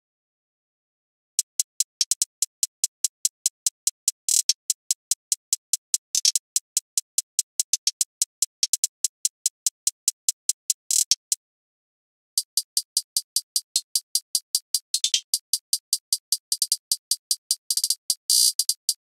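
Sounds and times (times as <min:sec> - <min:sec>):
closed hi-hat ticks and rolls: 0:01.4 - 0:11.4, 0:12.4 - 0:19.0.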